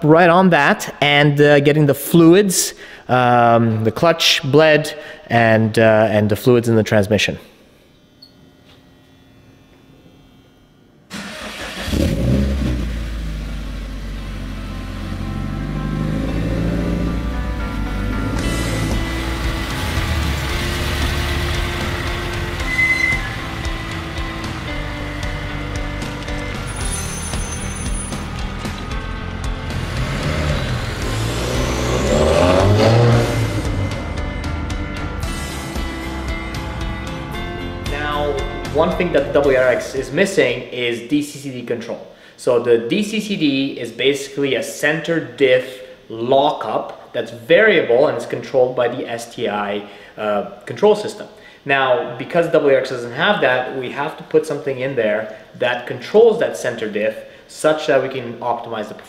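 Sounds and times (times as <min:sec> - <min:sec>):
car engine revving: 0:11.1 - 0:37.8.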